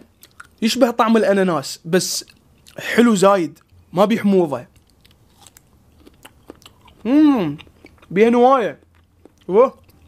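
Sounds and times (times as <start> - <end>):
fruit crunching while chewed: 0.0 - 0.6, 4.7 - 10.0.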